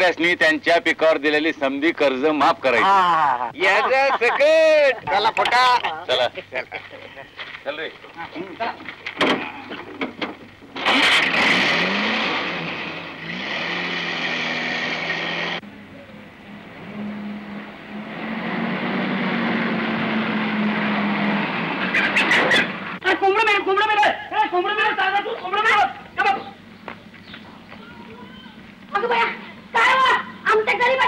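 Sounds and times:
jeep engine starting and revving: 10.6 - 15.6, 16.7 - 23.0
jeep driving closer: 10.8 - 23.0.

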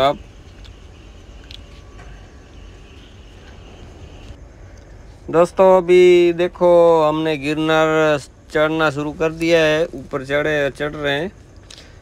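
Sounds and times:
street background rumble: 0.0 - 12.0.

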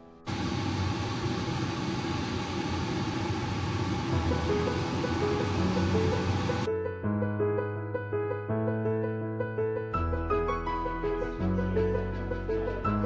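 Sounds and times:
oil sizzling in a pan: 0.3 - 6.7.

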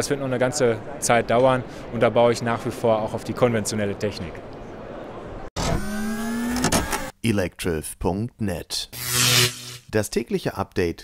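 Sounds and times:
electronic logo sound effect: 9.0 - 9.9.

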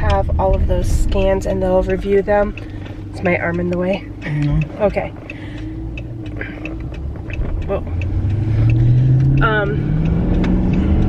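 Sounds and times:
car engine accelerating: 0.0 - 11.0
road noise inside car: 0.0 - 11.0.

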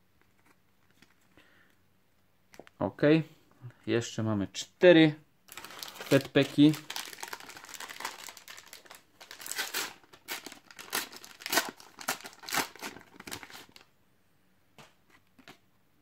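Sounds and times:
plastic wrapper tearing and crinkling: 5.5 - 13.9.

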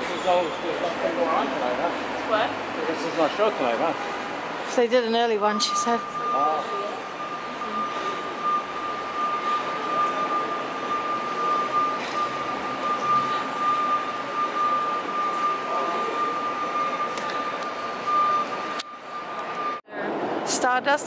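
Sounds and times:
passing people: 0.0 - 21.0
traffic: 0.0 - 21.0
high-pitched electronic whine: 4.8 - 19.8.

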